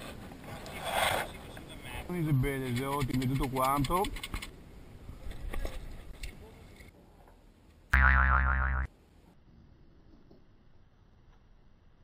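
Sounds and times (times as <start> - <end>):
wobbling pitched sound effect: 8.0 - 8.9.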